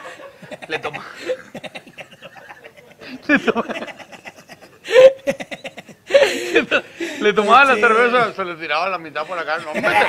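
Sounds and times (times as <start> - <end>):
men laughing: 0.0 - 8.2, 9.3 - 10.0.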